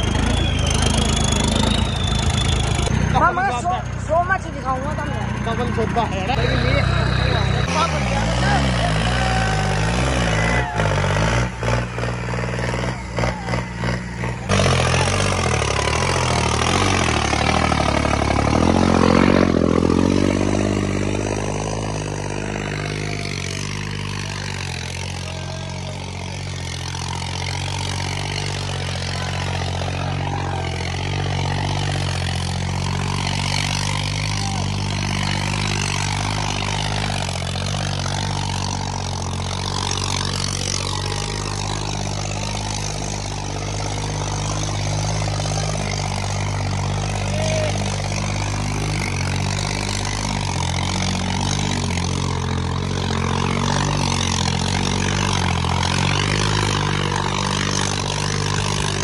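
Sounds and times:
tractor diesel engine labouring: 0.0 - 59.0.

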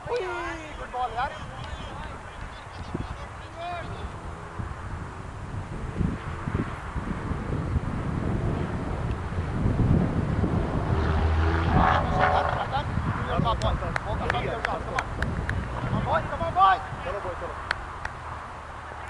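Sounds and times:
wind rumbling on microphone: 0.0 - 19.0.

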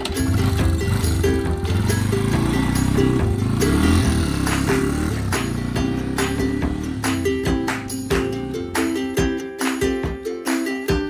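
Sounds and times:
motorbike engine pulling away: 0.0 - 8.9
background music: 0.0 - 11.0.

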